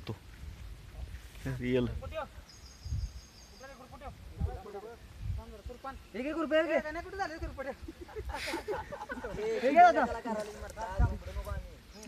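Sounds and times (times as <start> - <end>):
low wind rumble: 0.0 - 9.5.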